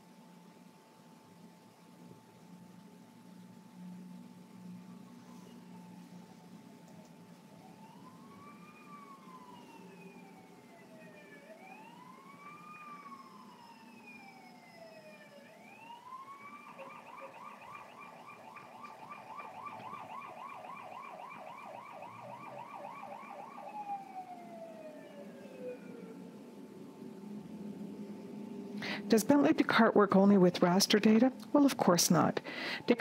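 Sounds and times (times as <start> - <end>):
faint siren wailing: 2.5 - 31.3, 32.5 - 33.0.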